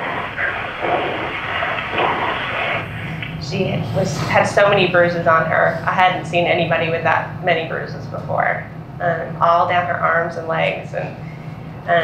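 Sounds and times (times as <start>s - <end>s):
phone line hiss: 0.0s - 3.3s.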